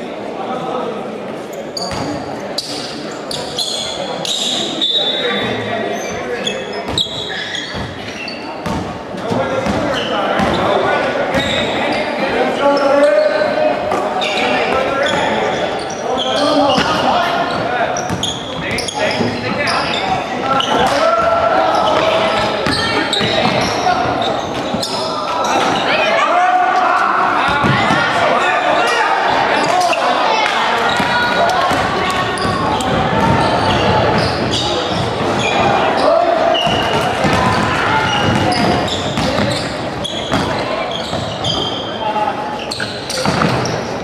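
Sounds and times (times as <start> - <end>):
people calling out: 9.9 - 43.8
basketball bouncing on wooden floor: 36.7 - 39.7.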